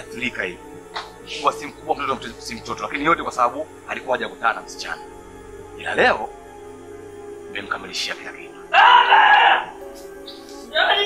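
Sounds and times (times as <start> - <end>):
background music with steady tones: 0.0 - 11.0
loud drawn-out vocal sound: 8.7 - 9.7.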